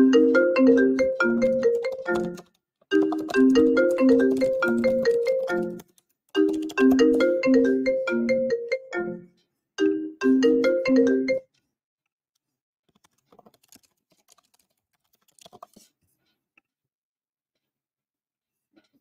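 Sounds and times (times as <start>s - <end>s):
marimba-like electronic tune: 0.0s - 5.8s, 6.4s - 11.4s.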